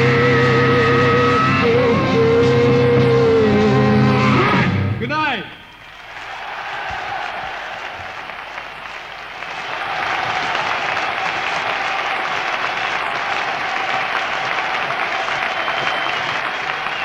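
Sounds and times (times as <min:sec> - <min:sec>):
concert audience applauding: 0:05.5 - 0:17.0.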